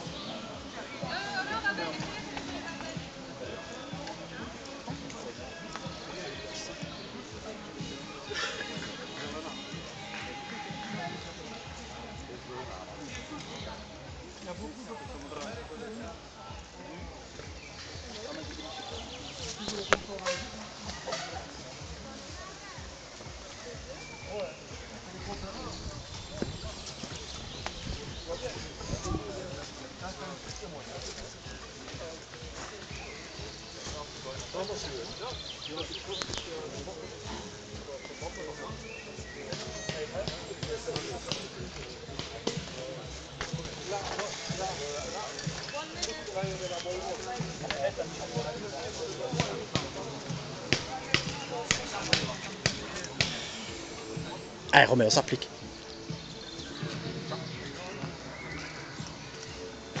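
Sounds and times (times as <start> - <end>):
background music: 0.0 - 60.0
spectators' voices: 0.0 - 60.0.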